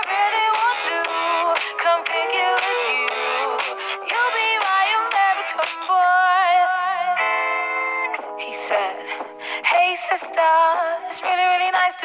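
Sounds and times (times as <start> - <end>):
backing track: 0.0 - 12.0
woman singing pop song: 0.0 - 12.0.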